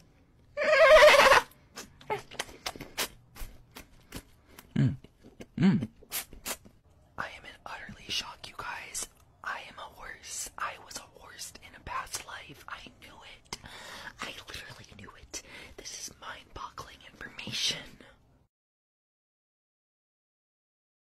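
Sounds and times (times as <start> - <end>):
person whispering: 7.2 - 18.3.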